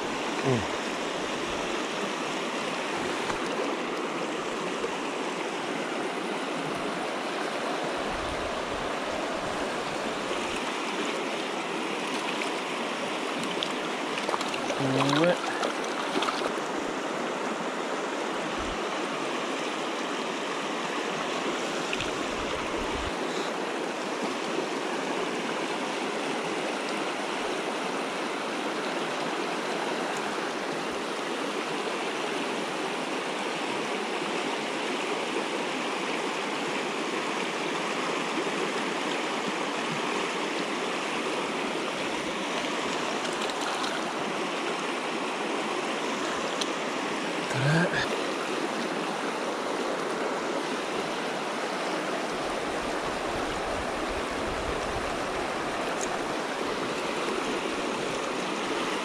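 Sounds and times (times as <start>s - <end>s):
stream water rushing: 0.0s - 59.0s.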